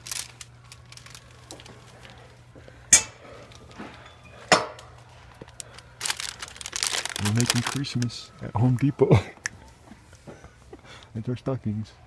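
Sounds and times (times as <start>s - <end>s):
crackly rustling: 0.0s - 4.1s, 4.8s - 11.1s
low steady hum: 0.0s - 12.0s.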